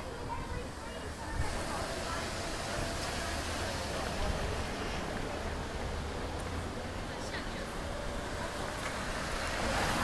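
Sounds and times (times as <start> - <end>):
cars passing by: 0.0 - 10.0.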